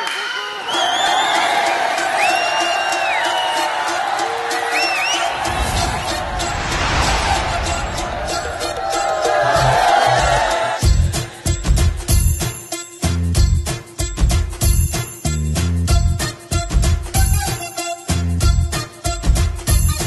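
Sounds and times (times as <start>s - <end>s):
crowd voices: 0.0s - 12.1s
heavy bass beat: 5.3s - 12.5s, 13.1s - 17.5s, 18.2s - 20.0s.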